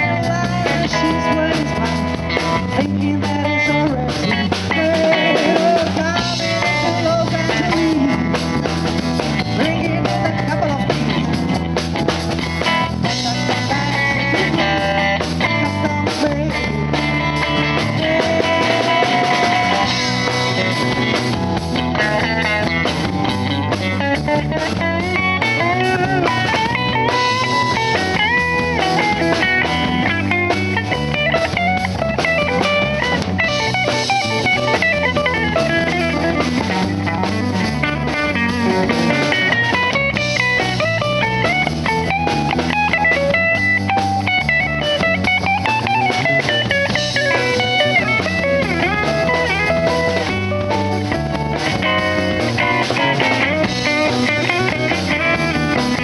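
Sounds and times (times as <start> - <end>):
electric guitar lead with bends: 0.0 - 56.0
live rock band playing: 0.0 - 56.0.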